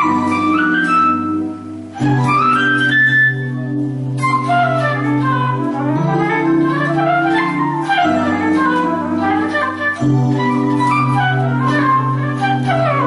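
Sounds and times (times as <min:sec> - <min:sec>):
sustained backing chords: 0:00.0 - 0:13.0
synthesized guitar jazz runs: 0:00.0 - 0:13.0.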